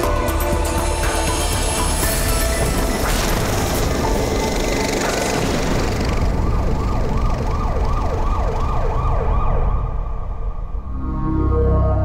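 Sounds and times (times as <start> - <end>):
dense noisy rush with deep rumble: 0.6 - 12.0
warbling siren-like tone: 5.9 - 12.0.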